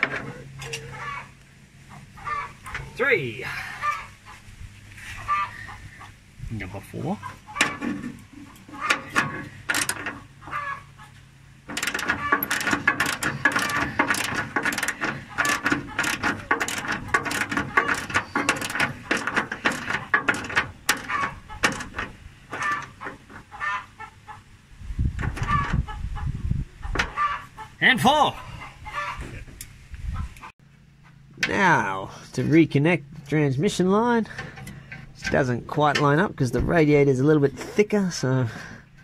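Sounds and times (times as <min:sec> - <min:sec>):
socket ratchet clicking: 0:08.9 - 0:10.1, 0:11.7 - 0:22.1.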